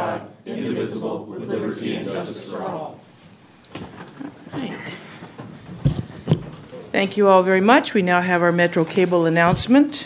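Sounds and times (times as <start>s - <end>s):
rustling and shuffling: 3.0s - 7.1s
sharp knocks: 5.7s - 6.6s.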